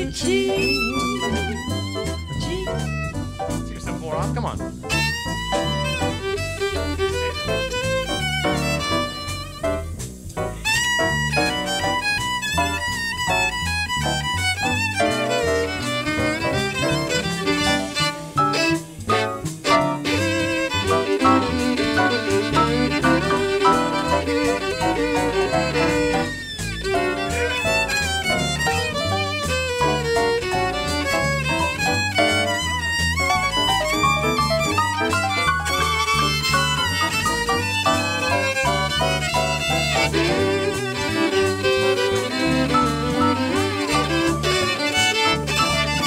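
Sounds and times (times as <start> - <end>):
drums: 0.0 - 46.0
piano: 0.0 - 46.0
plucked upright bass: 0.0 - 46.0
violin melody: 0.0 - 46.0.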